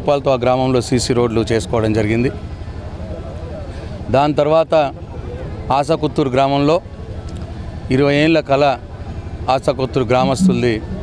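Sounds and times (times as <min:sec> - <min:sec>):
man speaking: 0:10.0 - 0:11.0.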